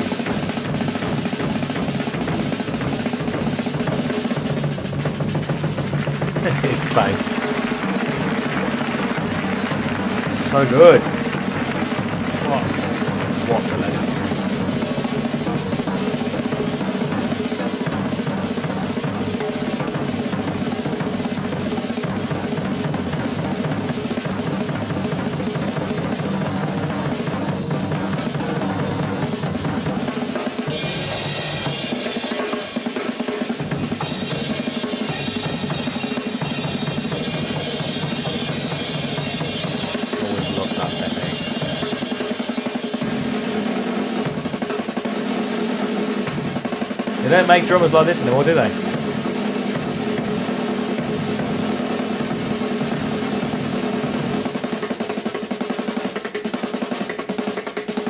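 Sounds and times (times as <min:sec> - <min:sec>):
bass drum: 0:00.0 - 0:30.1
drum kit rolls: 0:00.0 - 0:58.0
bright cymbals: 0:29.9 - 0:55.6.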